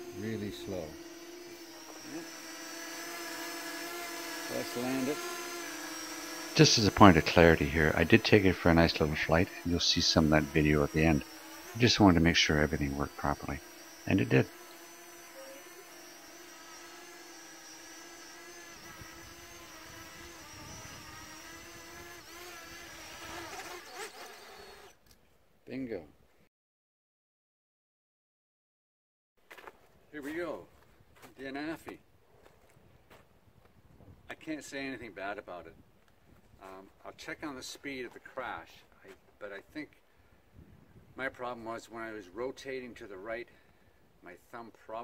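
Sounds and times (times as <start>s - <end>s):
drone propellers whining: 0.0s - 24.9s.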